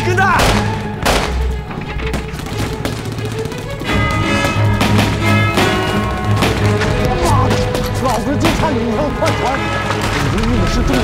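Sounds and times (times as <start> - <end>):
dramatic orchestral music: 0.0 - 11.0
gunfire: 0.3 - 11.0.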